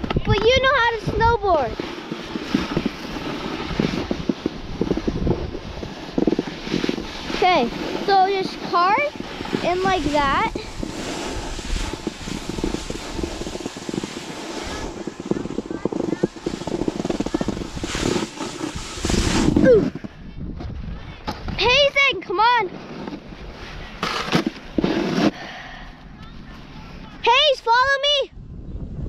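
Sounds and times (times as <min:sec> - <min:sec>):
wind on microphone: 0:00.0 - 0:22.1, 0:26.3 - 0:29.0
snowboard scraping icy snow: 0:00.4 - 0:20.1, 0:21.6 - 0:25.5.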